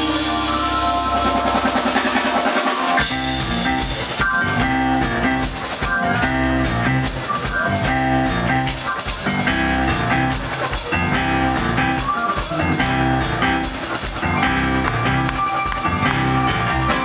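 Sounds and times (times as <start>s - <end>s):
drums and bass groove: 0.0s - 17.0s
jazz-funk band playing live: 0.0s - 17.0s.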